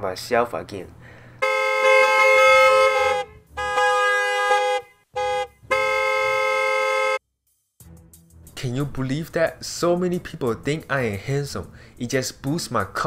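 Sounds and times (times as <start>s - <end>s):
car horns honking: 1.4s - 7.2s.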